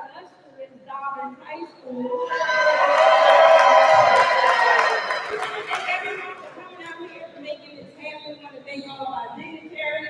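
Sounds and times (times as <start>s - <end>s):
audience cheering and shouting: 2.1s - 5.8s
clapping: 2.9s - 6.6s.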